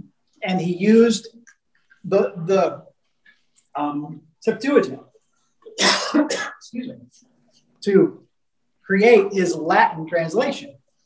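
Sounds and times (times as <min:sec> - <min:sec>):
man speaking: 0:00.4 - 0:02.9, 0:03.7 - 0:05.1, 0:07.8 - 0:08.2, 0:08.8 - 0:10.8
man clearing his throat: 0:05.7 - 0:06.7.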